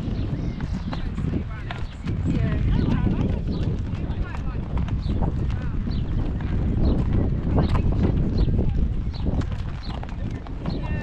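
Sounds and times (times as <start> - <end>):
horse hooves on gravel: 0.0 - 11.0.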